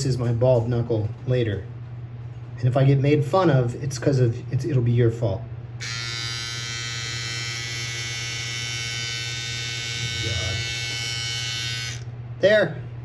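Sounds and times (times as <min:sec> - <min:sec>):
electric hair trimmer buzzing: 0:05.8 - 0:12.1.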